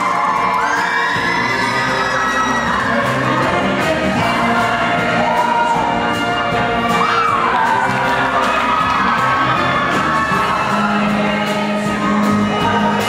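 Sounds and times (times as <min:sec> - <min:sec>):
audience cheering and shouting: 0:00.0 - 0:13.0
choir singing: 0:00.0 - 0:13.0.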